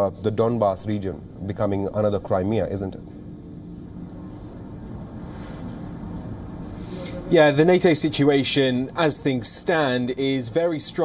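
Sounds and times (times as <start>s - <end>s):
faint constant hum: 0.0s - 11.0s
low rumble and hiss: 0.0s - 11.0s.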